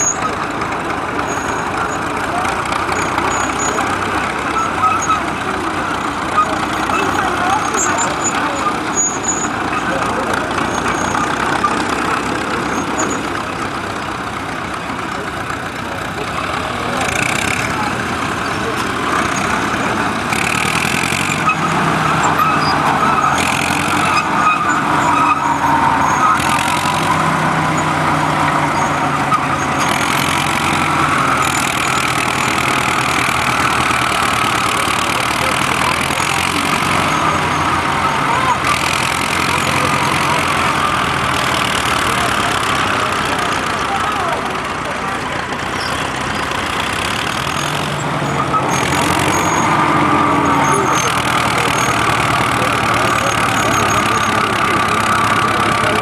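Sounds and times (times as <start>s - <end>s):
crowd chatter: 0.0s - 56.0s
heavy machinery engines: 0.0s - 56.0s.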